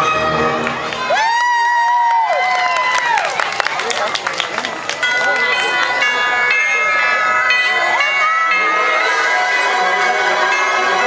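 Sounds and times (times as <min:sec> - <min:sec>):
parade music: 0:00.0 - 0:01.2, 0:03.7 - 0:11.0
crowd talking: 0:00.0 - 0:11.0.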